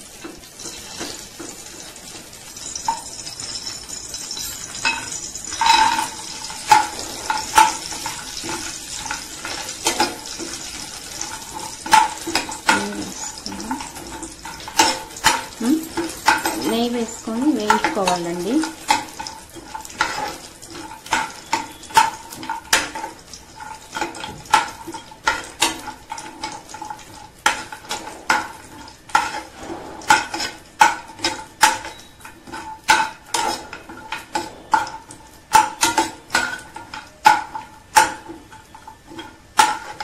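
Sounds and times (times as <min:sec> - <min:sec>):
nuts sizzling in a pan: 0:00.0 - 0:40.0
steel spoon scraping a pan: 0:00.3 - 0:40.0.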